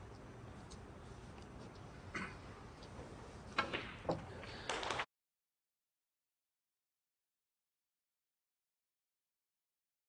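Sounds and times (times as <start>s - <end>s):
snooker balls striking: 3.5s - 4.3s.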